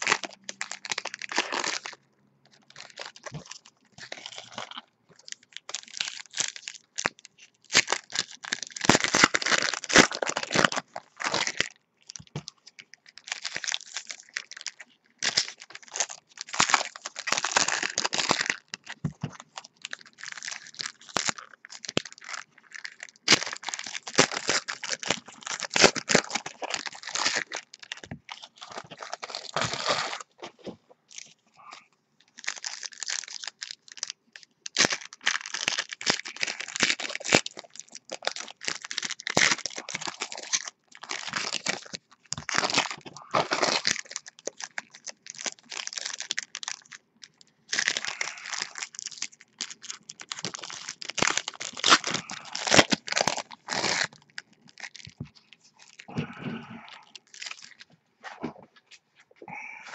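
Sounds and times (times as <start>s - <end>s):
foil wrappers tearing and crinkling: 0.0s - 2.0s, 2.6s - 30.4s, 32.3s - 57.9s.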